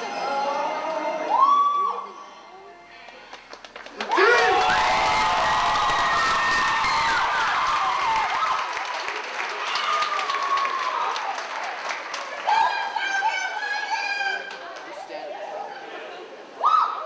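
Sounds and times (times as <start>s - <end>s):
high-pitched whoops and screams: 1.2s - 2.4s, 4.1s - 8.7s, 16.6s - 17.0s
audience clapping and cheering: 3.0s - 15.1s.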